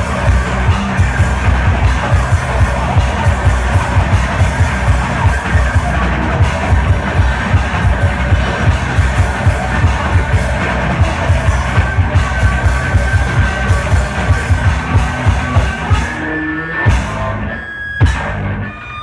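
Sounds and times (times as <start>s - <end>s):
drum kit beating fast rhythm: 0.0s - 17.4s
loud electric guitars: 0.0s - 19.0s.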